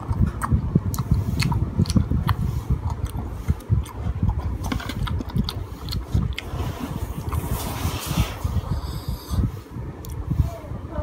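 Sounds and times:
crunchy chewing: 0.0 - 8.0.

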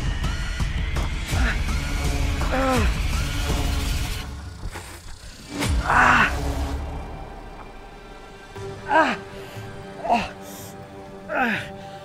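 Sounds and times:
man groaning in pain: 2.4 - 3.0, 11.2 - 11.8.

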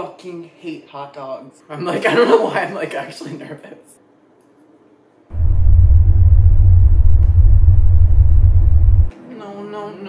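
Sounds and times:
deep bass rumble: 5.3 - 9.1.

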